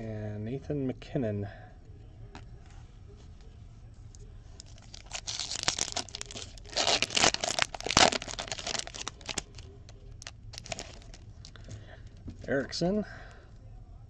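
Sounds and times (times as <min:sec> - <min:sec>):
foil card pack tearing: 0:04.6 - 0:09.6, 0:10.2 - 0:11.2.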